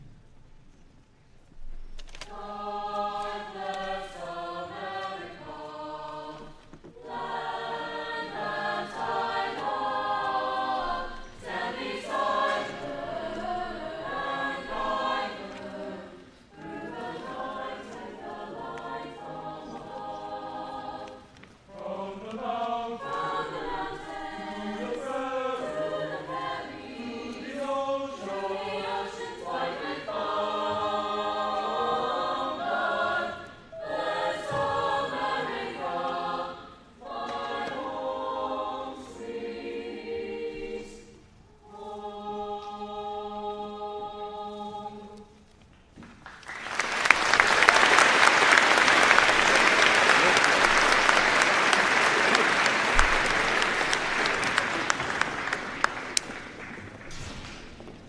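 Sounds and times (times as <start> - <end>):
children's choir singing: 2.2 - 45.4, 46.5 - 56.6.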